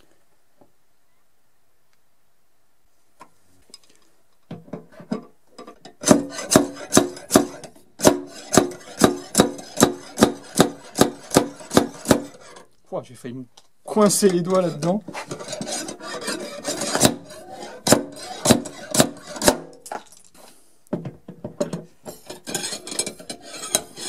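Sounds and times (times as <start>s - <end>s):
slide hammer metallic knocks: 5.6s - 12.4s.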